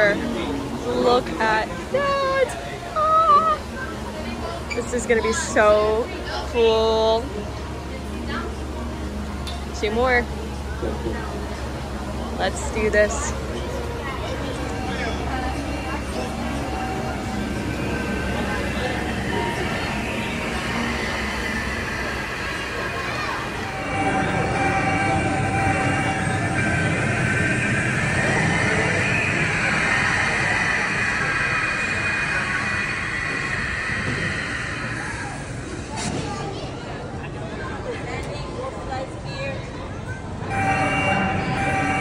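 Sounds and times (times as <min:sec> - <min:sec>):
rumbling roar of sliding: 0:12.8 - 0:37.5, 0:40.4 - 0:42.0
high squealing: 0:14.7 - 0:35.8.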